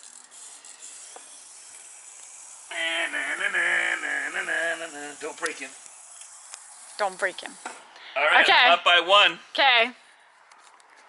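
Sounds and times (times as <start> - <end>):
clockwork motor whirring: 0.0 - 8.5.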